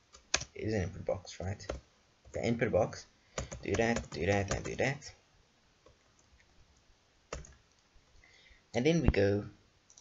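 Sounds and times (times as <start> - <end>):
computer keyboard keystrokes: 0.1 - 0.5, 3.4 - 4.8, 7.3 - 7.6.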